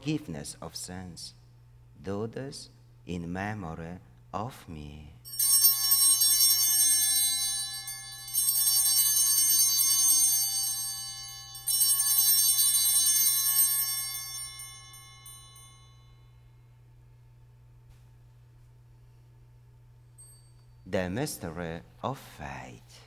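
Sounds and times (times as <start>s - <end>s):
altar bells jingling: 5.3s - 16.3s, 20.1s - 21.4s.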